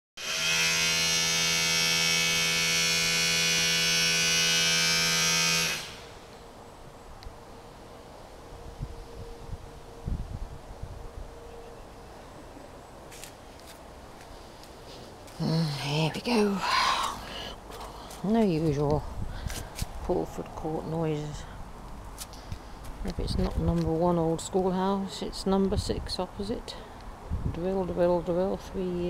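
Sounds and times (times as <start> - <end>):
electric power drill whining: 0.2 - 6.3.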